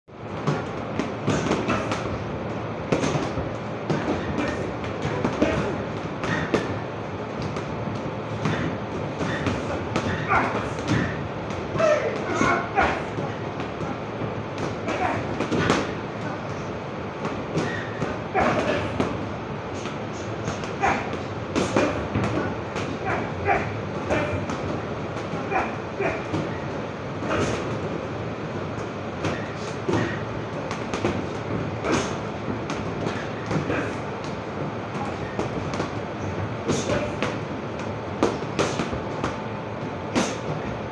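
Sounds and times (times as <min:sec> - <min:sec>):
busy gym background: 0:00.1 - 0:40.9
noisy background: 0:00.1 - 0:40.9
punches hitting punching bags: 0:00.3 - 0:16.4, 0:17.2 - 0:27.9, 0:28.7 - 0:40.8.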